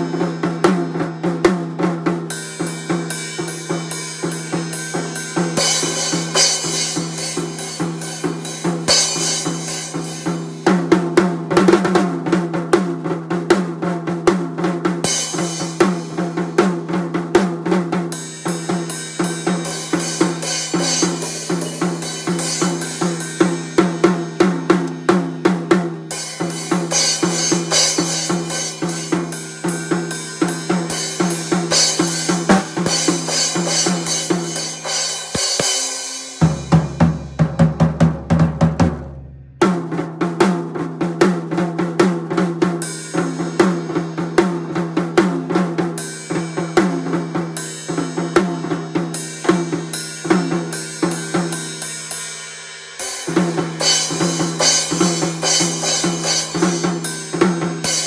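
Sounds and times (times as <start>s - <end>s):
acoustic drum kit beat: 0.0s - 58.0s.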